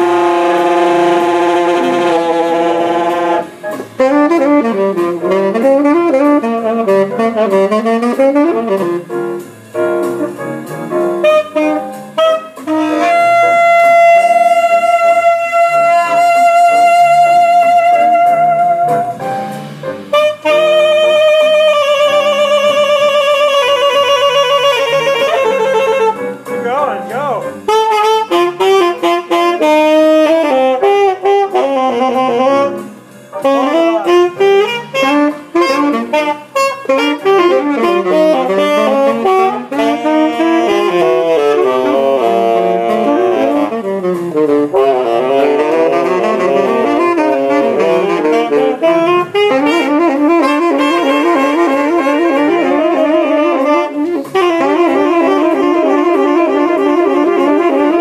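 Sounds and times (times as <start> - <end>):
saxophones improvising blues: 0.0 - 58.0.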